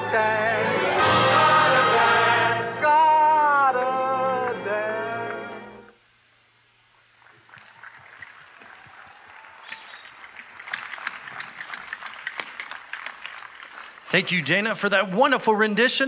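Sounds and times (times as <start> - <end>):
audience applause: 7.2 - 14.9.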